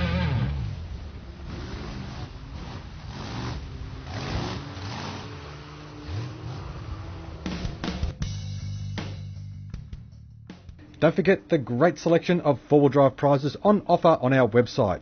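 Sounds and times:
truck engine revving: 0:00.0 - 0:08.4.

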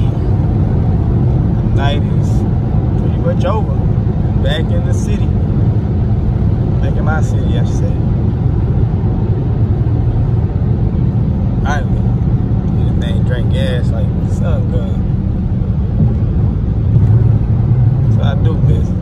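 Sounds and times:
car engine drone inside cabin: 0:00.0 - 0:19.0.

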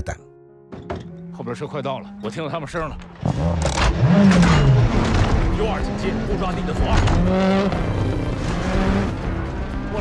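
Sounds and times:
rally car engine accelerating: 0:03.1 - 0:10.0.

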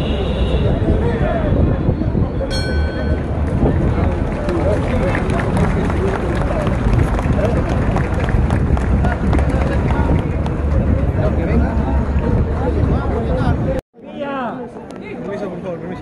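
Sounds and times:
crowd voices talking: 0:00.0 - 0:16.0.

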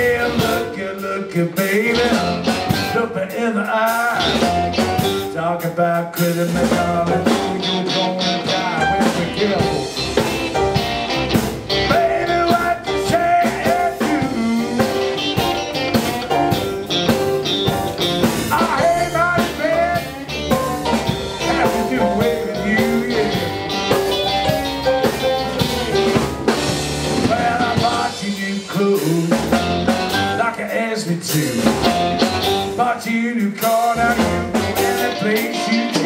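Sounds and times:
blues band playing instrumental: 0:00.0 - 0:36.0.

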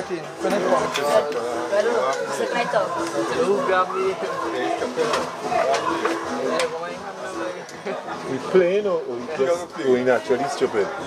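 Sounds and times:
indistinct talking: 0:00.0 - 0:11.0.

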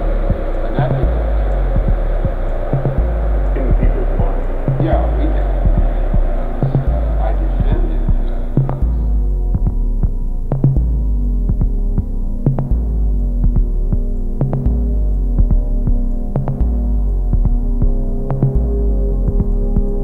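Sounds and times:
deep droning bass: 0:00.0 - 0:20.0
steady sustained tones: 0:00.0 - 0:20.0.

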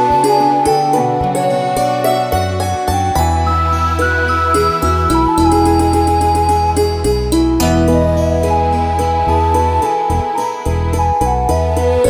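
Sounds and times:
held melody notes: 0:00.0 - 0:12.0
sustained bass: 0:00.0 - 0:12.0.

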